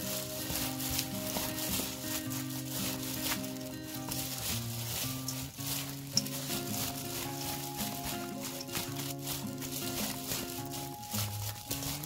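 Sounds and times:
background music: 0.0s - 12.0s
wet leaves squishing in bowl: 0.0s - 12.0s.

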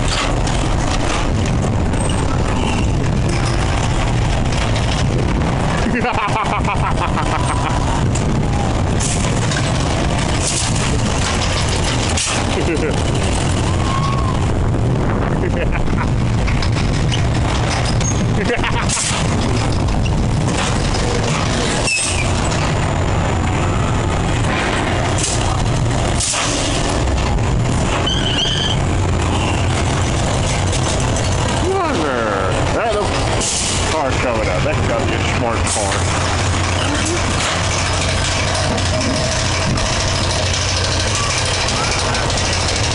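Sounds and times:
coaster car rumbling on track: 0.0s - 42.9s
wind noise on microphone: 0.0s - 42.9s
person laughing: 5.8s - 8.0s, 12.5s - 13.0s, 15.3s - 16.2s, 18.4s - 19.1s, 36.8s - 37.3s
hiss of air: 26.2s - 26.8s, 33.4s - 33.9s
voices: 31.5s - 37.4s.

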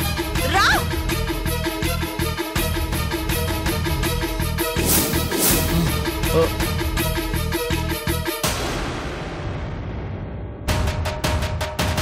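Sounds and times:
dramatic music hit: 8.4s - 12.0s.

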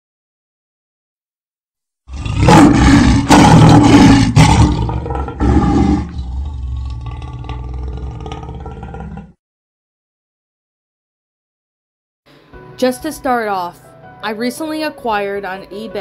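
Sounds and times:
lion roaring: 2.1s - 9.4s.

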